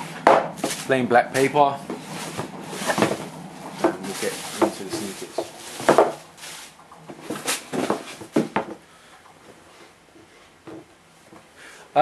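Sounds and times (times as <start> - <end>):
tissue paper rustling: 2.0 - 8.3.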